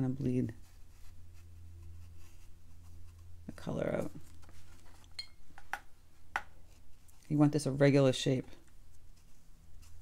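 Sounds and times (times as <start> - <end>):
paintbrush clinking on jar: 5.1 - 5.4.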